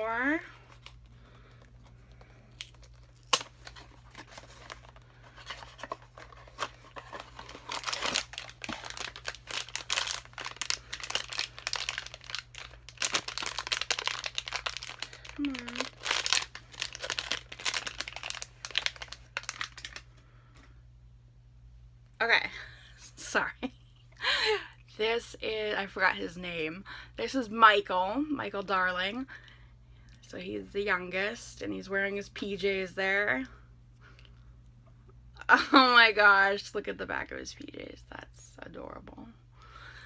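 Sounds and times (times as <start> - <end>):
foil wrapper crinkling: 0.5 - 20.2.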